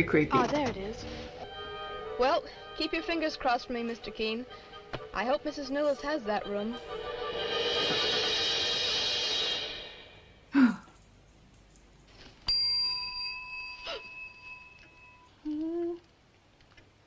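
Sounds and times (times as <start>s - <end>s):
noisy sound: 3.3s - 10.8s
hotel bell ringing: 12.5s - 15.3s.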